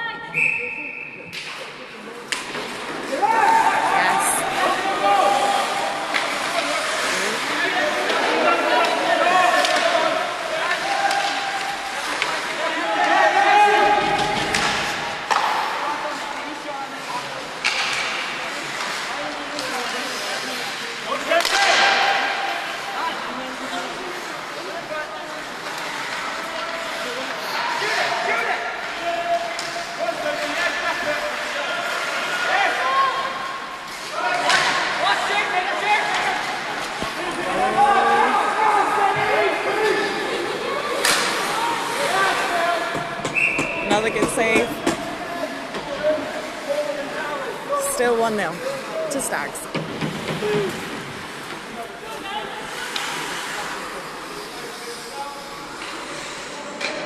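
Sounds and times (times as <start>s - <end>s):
voices shouting and talking: 0.0s - 17.6s, 20.4s - 51.1s
hits slamming against rink boards: 13.9s - 15.8s, 21.4s - 22.4s.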